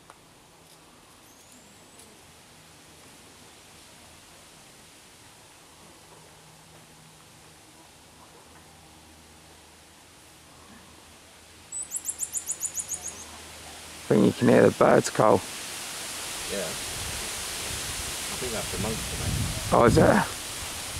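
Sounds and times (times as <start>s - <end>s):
faint background hiss: 0.0s - 20.9s
marmoset twittering call: 11.7s - 13.4s.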